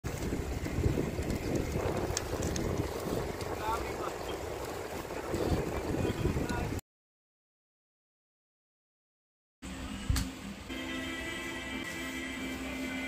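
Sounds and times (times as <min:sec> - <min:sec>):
wind noise on microphone: 0:00.0 - 0:06.8.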